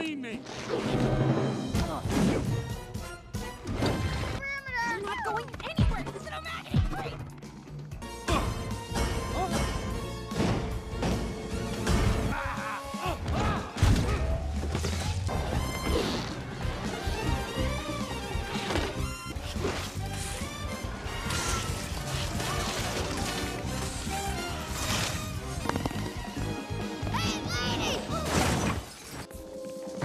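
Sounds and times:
action film music: 0.0 - 30.0.

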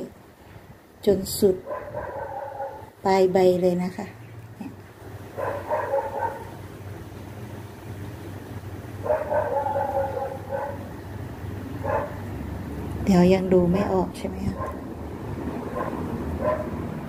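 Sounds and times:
steady low hum: 0.0 - 17.0
animal whining: 9.0 - 11.0.

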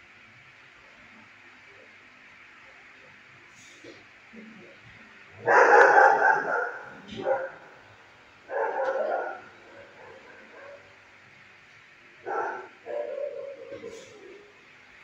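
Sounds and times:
dog barking: 5.4 - 7.7, 8.5 - 10.9, 12.2 - 14.3.

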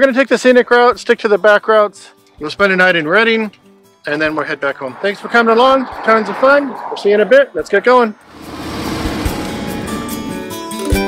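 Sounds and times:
road and wind noise: 2.4 - 10.8
motorcycle engine: 8.3 - 10.4
faint guitar music: 9.6 - 11.0.

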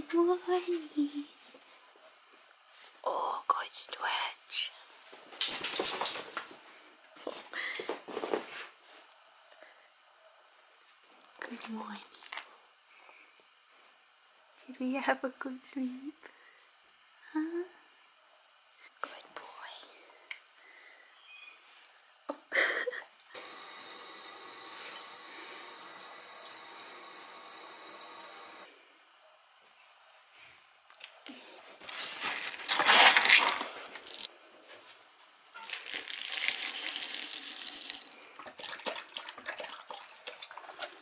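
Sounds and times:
person whispering: 3.0 - 4.8, 18.8 - 20.2
dry kibble poured into bowl: 35.6 - 38.2
dog lapping water: 38.4 - 41.0.

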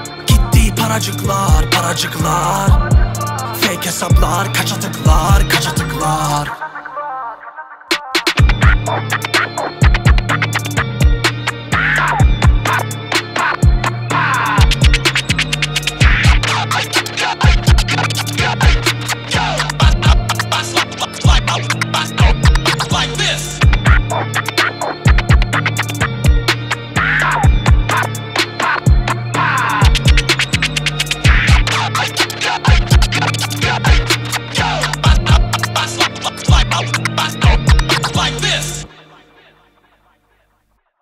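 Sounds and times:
bass line: 0.0 - 6.5, 8.4 - 39.0
turntable scratching: 0.0 - 7.1, 7.9 - 38.9
hip-hop beat: 0.0 - 40.0
deep kick drums: 0.3 - 3.2, 4.1 - 4.5, 5.1 - 5.5, 8.4 - 8.9, 9.8 - 11.3, 12.2 - 12.8, 13.6 - 14.0, 14.6 - 15.1, 16.0 - 16.5, 17.4 - 17.9, 19.8 - 20.3, 21.2 - 21.5, 22.2 - 22.7, 23.6 - 24.2, 25.1 - 26.5, 27.4 - 28.0, 28.9 - 29.2, 29.8 - 30.6, 31.2 - 31.7, 32.7 - 33.2, 35.0 - 35.5, 36.5 - 36.8, 37.4 - 37.9.

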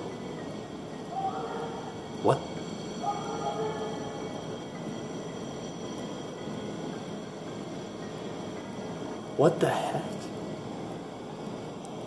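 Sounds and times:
drawn-out wailing noise: 0.0 - 12.0.

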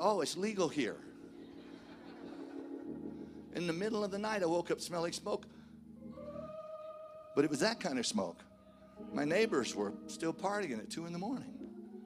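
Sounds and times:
soft sustained keyboard chord: 0.0 - 12.0.

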